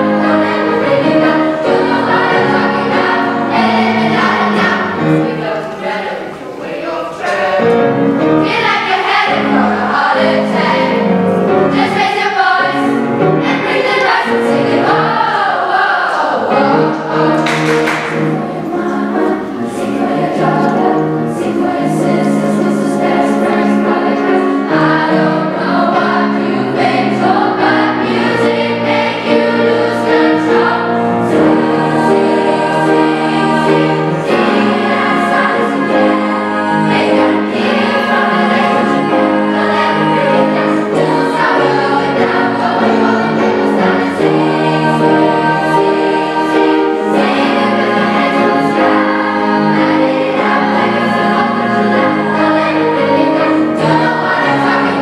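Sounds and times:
choir singing: 0.0 - 55.0
piano accompaniment: 0.0 - 55.0.

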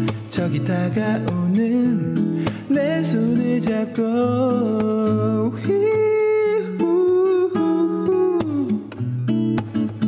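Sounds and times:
classical guitar plucking: 0.0 - 10.0.

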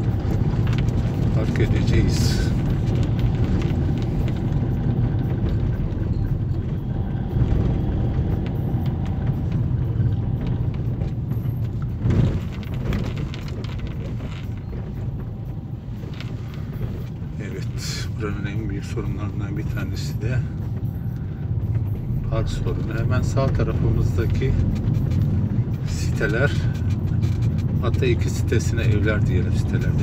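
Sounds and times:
car engine and tyres rumbling: 0.0 - 30.0.

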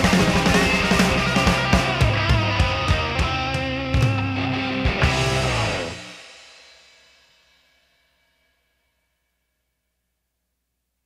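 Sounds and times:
hard rock chord ringing out: 0.0 - 7.4.

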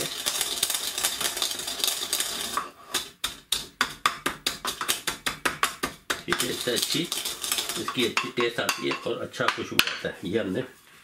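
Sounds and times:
pestle grinding seeds: 0.0 - 10.0
pestle knocking in mortar: 2.9 - 10.1.

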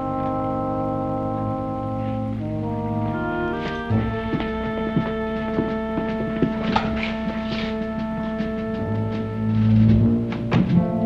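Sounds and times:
sustained orchestral chord: 0.0 - 10.2.

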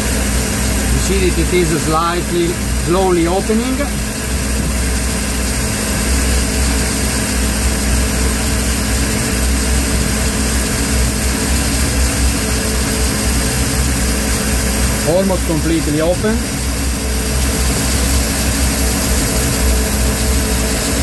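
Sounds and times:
boat engine idling: 0.0 - 21.0.

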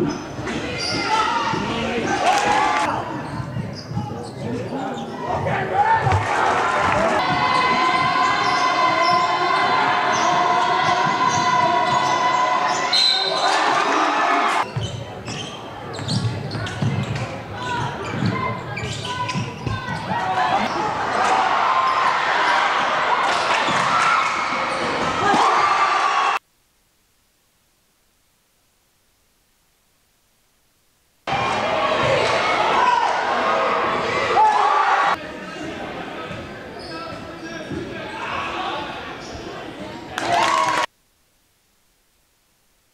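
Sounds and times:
crowd voices: 0.0 - 26.4, 31.3 - 40.9.

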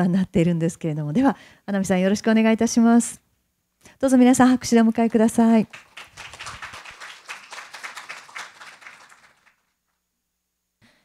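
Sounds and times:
audience applauding: 5.7 - 9.7.

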